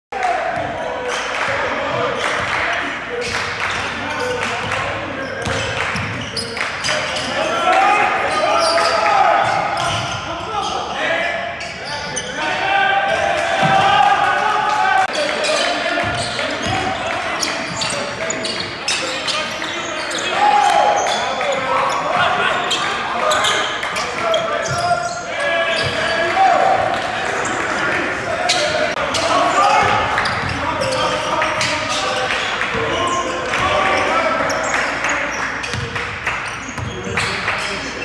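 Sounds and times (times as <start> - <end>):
voices calling out: 0.2 - 38.0.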